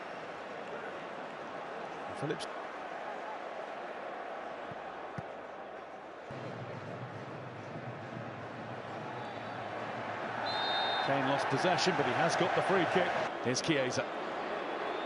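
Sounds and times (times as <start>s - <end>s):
stadium crowd chanting: 1.5s - 13.4s
referee's whistle: 10.4s - 11.3s.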